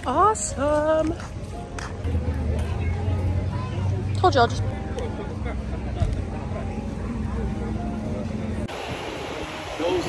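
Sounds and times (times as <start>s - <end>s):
hissy outdoor noise: 5.2s - 10.0s.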